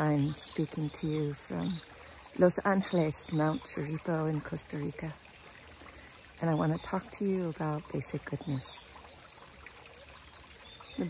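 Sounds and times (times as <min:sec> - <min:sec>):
fountain water trickling: 0:00.0 - 0:11.0.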